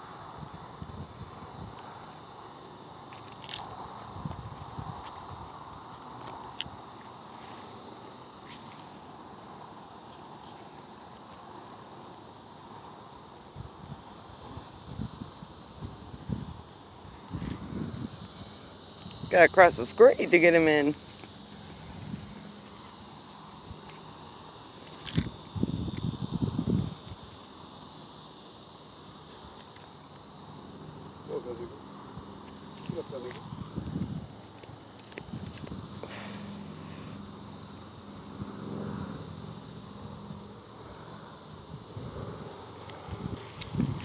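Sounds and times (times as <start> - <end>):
faint outdoor background: 0.0 - 44.0
insects chirring: 0.0 - 44.0
rustling and scuffing: 6.9 - 9.2, 17.1 - 18.2, 21.0 - 23.3, 42.5 - 44.0.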